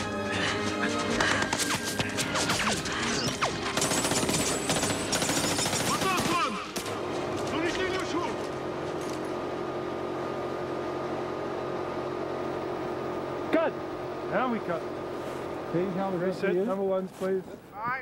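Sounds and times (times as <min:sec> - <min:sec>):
steady hum: 0:00.0 - 0:18.0
automatic gunfire: 0:01.5 - 0:07.0.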